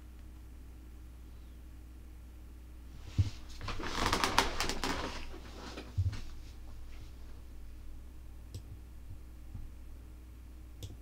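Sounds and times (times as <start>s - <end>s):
chair rustling and creaking: 3.0s - 7.4s.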